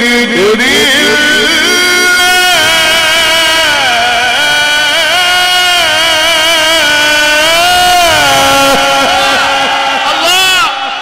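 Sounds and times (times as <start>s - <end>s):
man chanting through microphone: 0.0s - 11.0s.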